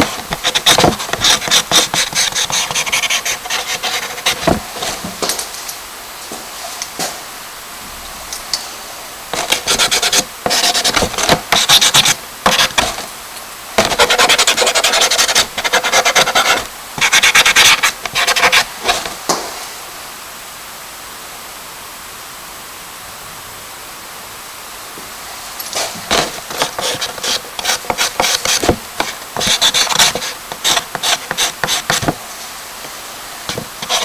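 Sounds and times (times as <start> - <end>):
charcoal scratching on paper: 0.0 - 4.6, 9.4 - 13.0, 13.8 - 19.1, 26.1 - 32.2, 33.5 - 34.0
faint hiss: 0.0 - 34.0.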